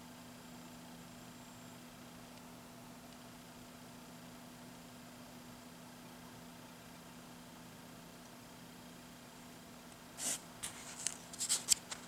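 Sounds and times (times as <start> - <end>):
comic book pages rustling: 10.2 - 12.0.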